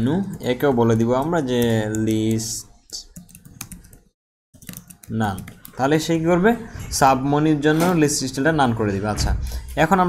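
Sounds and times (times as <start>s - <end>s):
keyboard typing: 0.0s - 6.2s.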